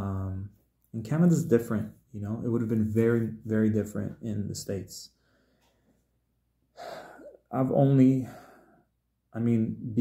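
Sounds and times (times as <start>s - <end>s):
man sharp intake of breath: 6.8s - 7.4s, 8.2s - 8.9s.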